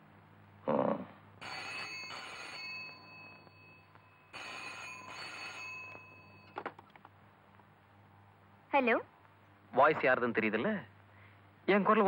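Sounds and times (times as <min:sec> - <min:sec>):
telephone ringing: 0:01.4 - 0:06.8.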